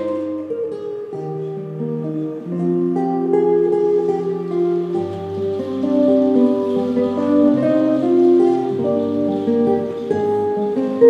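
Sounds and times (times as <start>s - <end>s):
plucked strings melody: 0.0s - 11.0s.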